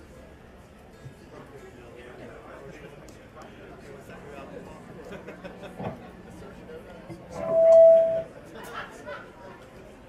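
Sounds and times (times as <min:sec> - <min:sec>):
crowd chatter: 0:00.0 - 0:10.0
high-pitched amplifier tone: 0:07.3 - 0:08.4.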